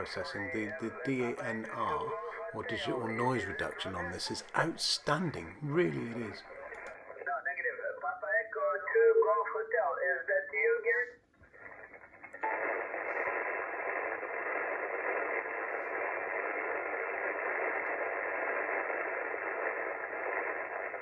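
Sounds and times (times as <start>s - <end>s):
radio band noise hiss: 0.0s - 9.0s, 11.6s - 21.0s.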